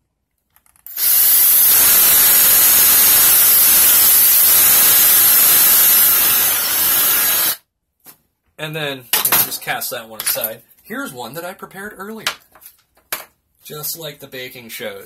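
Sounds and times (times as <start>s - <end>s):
electric drill whirring through plastic: 0.9s - 7.6s.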